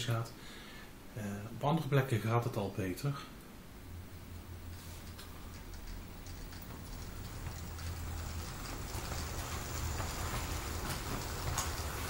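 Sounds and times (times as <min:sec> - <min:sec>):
wheels clicking over rails: 0:04.6 - 0:12.0
model train humming: 0:05.6 - 0:12.0.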